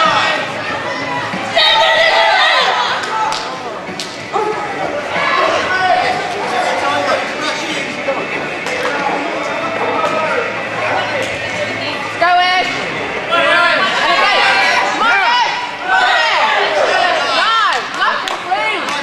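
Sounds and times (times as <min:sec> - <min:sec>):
voices shouting: 0:00.0 - 0:03.5, 0:04.3 - 0:08.0, 0:12.6 - 0:19.0
crowd chatter in a hall: 0:00.0 - 0:19.0.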